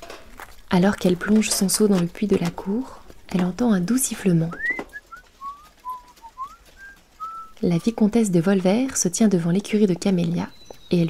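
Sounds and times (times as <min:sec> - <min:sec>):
person whistling a tune: 0:04.5 - 0:07.5.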